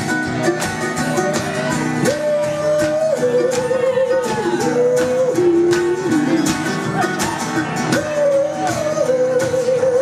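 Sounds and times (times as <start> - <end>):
strummed acoustic guitar: 0.0 - 10.0
person singing long notes: 1.1 - 10.0.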